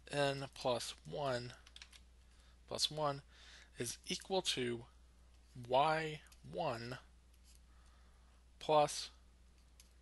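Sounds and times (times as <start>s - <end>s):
man speaking: 0.0s - 1.6s, 2.7s - 7.1s, 8.6s - 9.2s
low steady hum: 0.0s - 10.0s.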